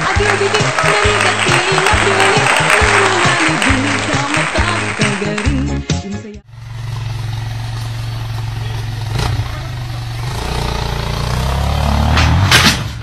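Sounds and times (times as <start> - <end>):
motorcycle engine running: 6.4 - 12.2.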